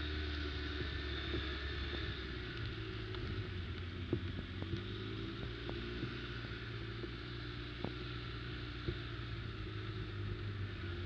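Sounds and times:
atv engine running: 0.0s - 11.0s
rushing wind and tyres: 0.0s - 11.0s.

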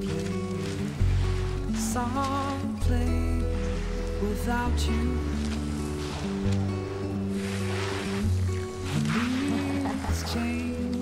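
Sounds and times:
slow song with bass line: 0.0s - 11.0s.

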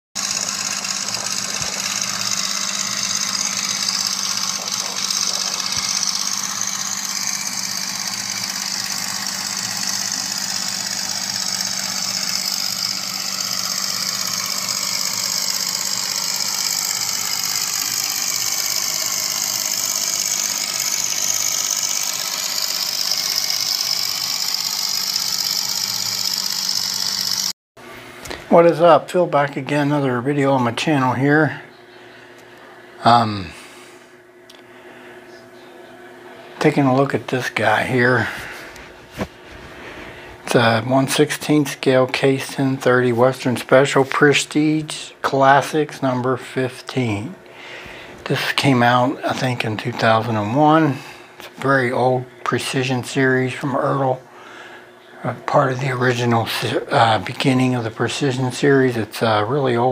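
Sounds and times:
engine running: 0.2s - 59.9s.

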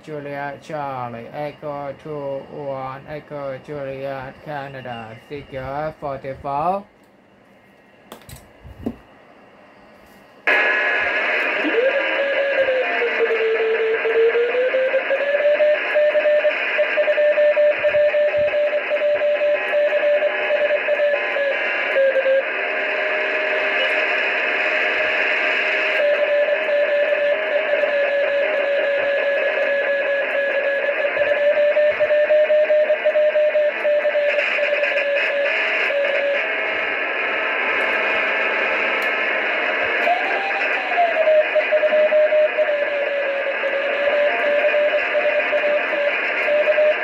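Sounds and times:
radio receiver hiss: 0.0s - 47.0s.

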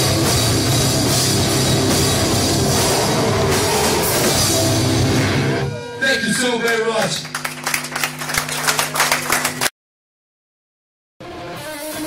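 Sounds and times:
drum kit: 0.0s - 5.8s
electric guitars: 0.0s - 6.0s, 11.2s - 12.0s.

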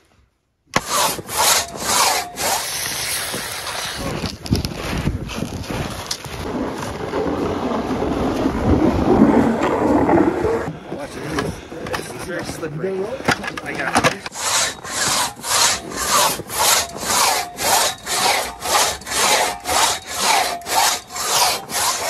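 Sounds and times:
crosscut saw rasping through log: 0.8s - 4.0s, 14.3s - 22.0s.

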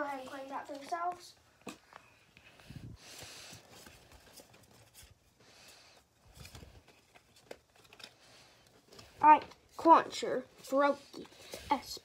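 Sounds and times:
card pack rustling: 3.2s - 9.8s.

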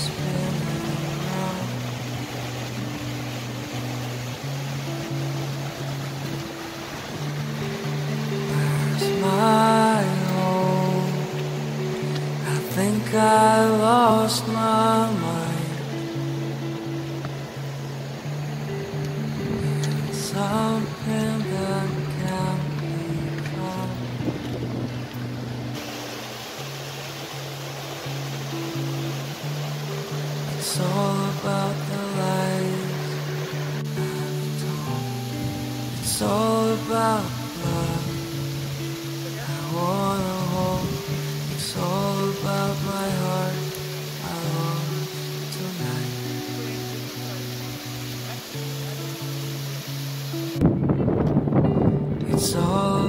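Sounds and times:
steady hiss: 0.0s - 51.3s
instrumental slow pop music: 0.0s - 53.0s.

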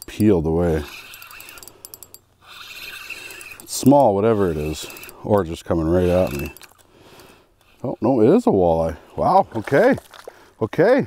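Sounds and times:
fishing reel gears ticking: 0.0s - 8.2s.

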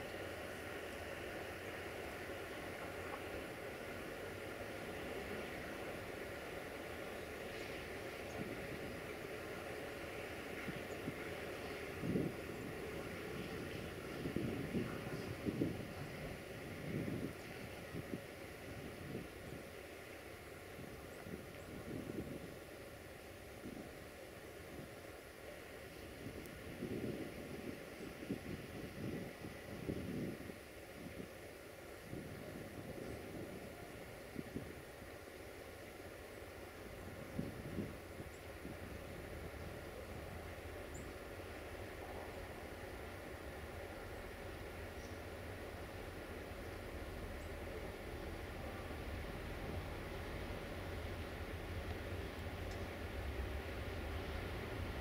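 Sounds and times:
diesel locomotive rumble: 0.0s - 55.0s.

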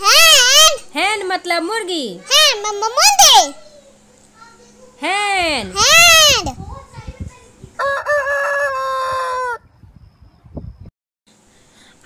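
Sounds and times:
rooster crowing: 7.8s - 9.7s.

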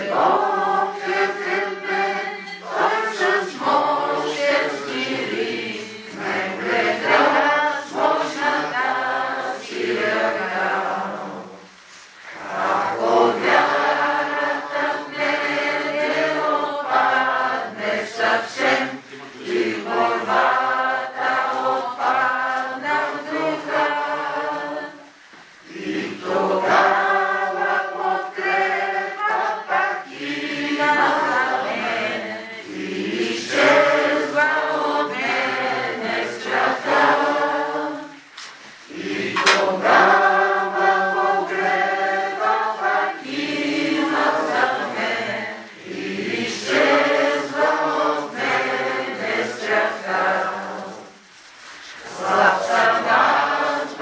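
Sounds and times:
group singing a hymn: 0.0s - 54.0s.

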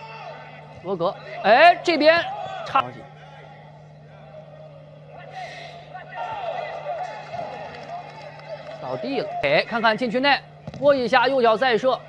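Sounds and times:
steady low hum: 0.0s - 12.0s
faint voices: 2.2s - 9.8s.

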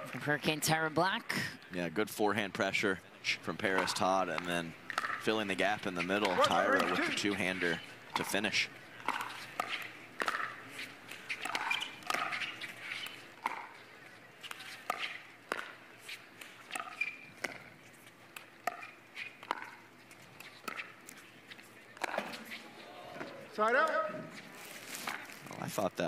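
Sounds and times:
shoe squeaks on court: 9.1s - 13.8s, 16.0s - 17.7s, 18.7s - 21.0s.

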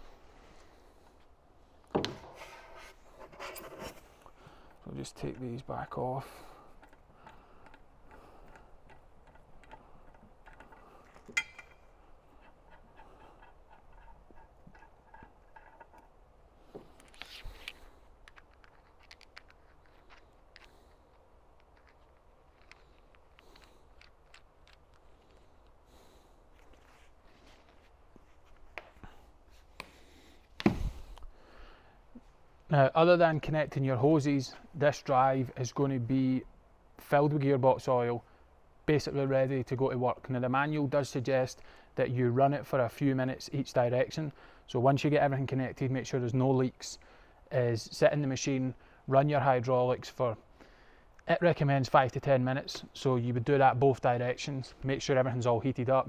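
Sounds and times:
metal fittings clicking and scraping: 4.6s - 16.2s, 16.9s - 25.8s
wrench and fittings scraping: 6.6s - 16.2s.

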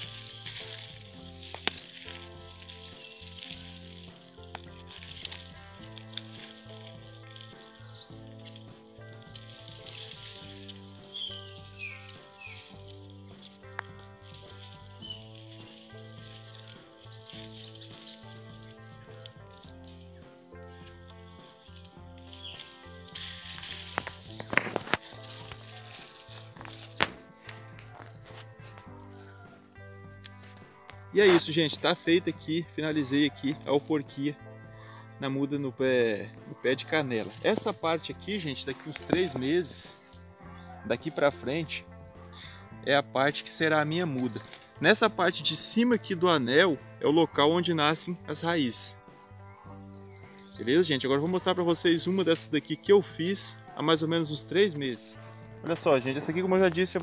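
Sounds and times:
high bird-like chirps: 0.0s - 3.9s, 6.3s - 12.8s, 14.3s - 19.1s, 22.3s - 26.4s, 43.6s - 45.3s, 49.2s - 51.0s
background music: 0.0s - 57.0s.

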